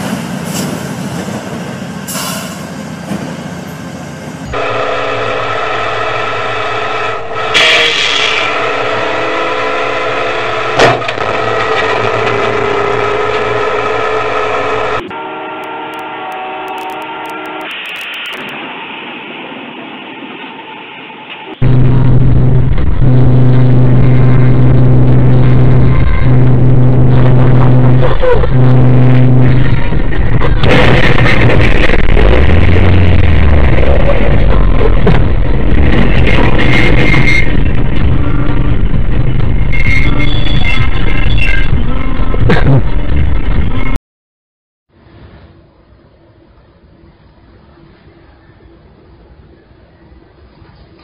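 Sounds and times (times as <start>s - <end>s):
train horn blasts: 4.5s - 17.8s, 21.6s - 30.3s, 36.7s - 43.1s
road vehicles moving: 16.7s - 44.0s
heavy crash noise: 21.6s - 39.8s
loud car crash: 30.3s - 32.9s.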